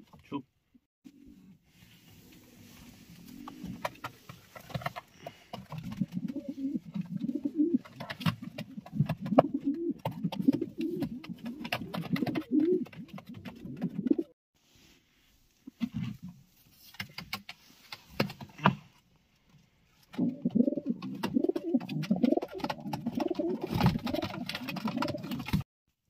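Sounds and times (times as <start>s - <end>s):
pigeon cooing: 5.2s - 14.3s, 20.1s - 25.6s.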